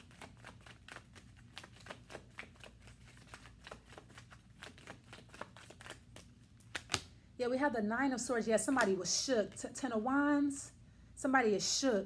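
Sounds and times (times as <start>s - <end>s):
cards being shuffled: 0.0s - 7.1s.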